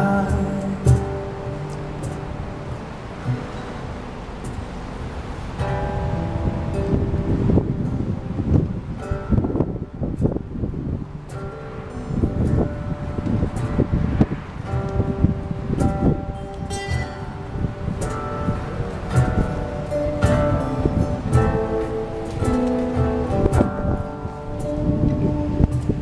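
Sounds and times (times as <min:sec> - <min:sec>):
acoustic guitars playing: 0:00.0 - 0:26.0
wind rumble on microphone: 0:00.0 - 0:26.0.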